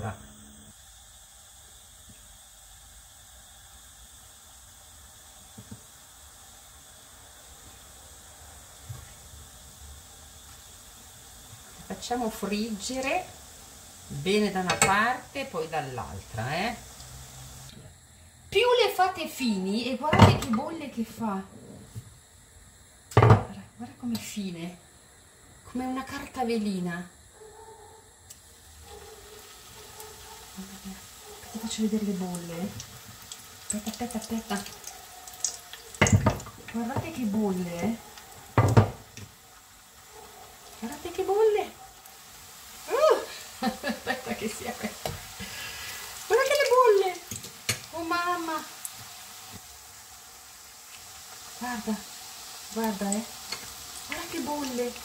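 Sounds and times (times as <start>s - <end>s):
faint held tone: 0.0s - 0.8s
oil sizzling in a pan: 0.0s - 27.3s, 28.2s - 55.0s.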